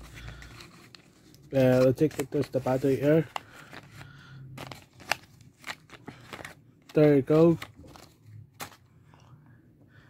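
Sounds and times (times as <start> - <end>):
faint handling noise: 0.0 - 9.3.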